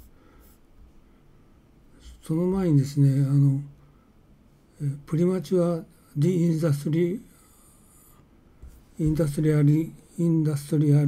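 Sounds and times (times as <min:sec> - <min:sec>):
man speaking: 0:02.0 - 0:03.7, 0:04.8 - 0:07.3, 0:09.0 - 0:11.0.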